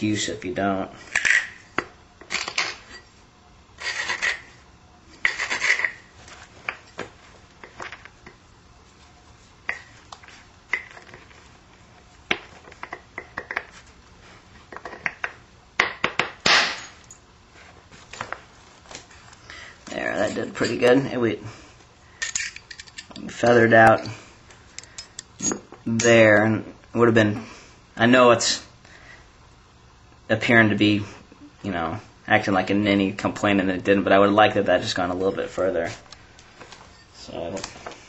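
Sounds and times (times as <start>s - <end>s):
stone rasping on stone: 3.8s - 4.5s, 5.2s - 6.0s.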